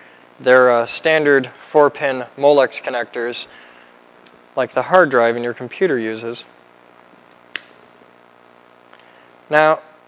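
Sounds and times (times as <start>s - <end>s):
faint room hum: 0.0s - 10.0s.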